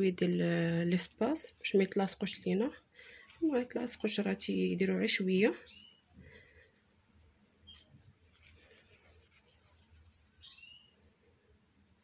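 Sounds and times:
faint high chirps: 7.6 - 8.0, 10.3 - 11.2.

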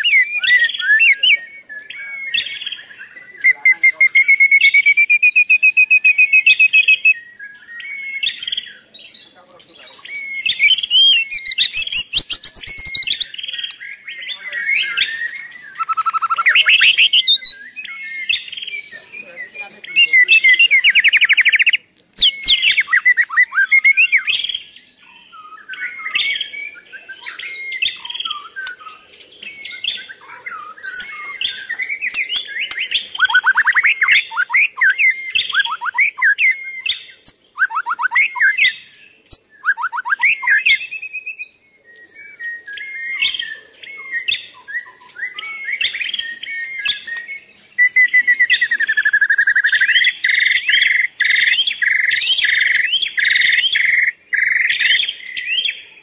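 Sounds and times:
wild birds chirping and singing: 0.0 - 56.0.

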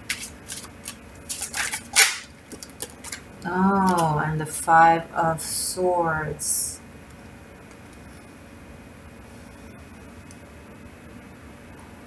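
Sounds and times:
cards being shuffled: 0.0 - 4.2.

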